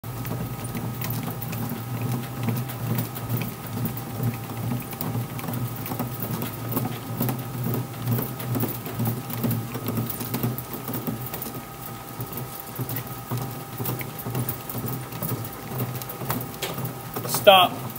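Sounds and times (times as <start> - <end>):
bat rolling machine rumble and clicks: 0.0 - 17.9.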